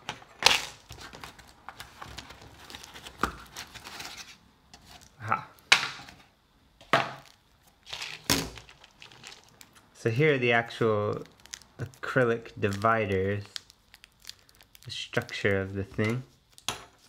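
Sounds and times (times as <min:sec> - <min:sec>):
plastic wrap handling: 0:00.0 - 0:05.2, 0:07.1 - 0:17.0.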